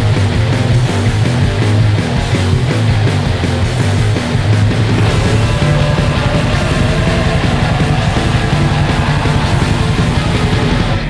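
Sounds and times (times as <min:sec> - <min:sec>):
black metal music: 0:00.3 - 0:11.0.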